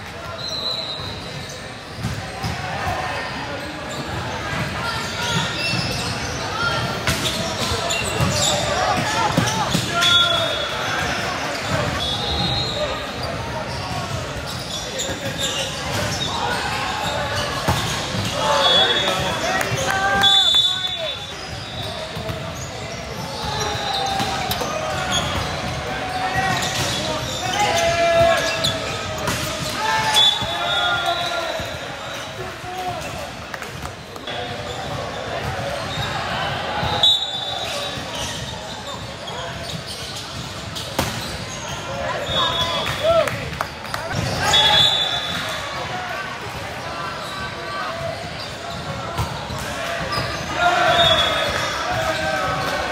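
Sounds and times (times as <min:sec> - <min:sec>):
players and spectators calling out: 0:00.0 - 0:52.9.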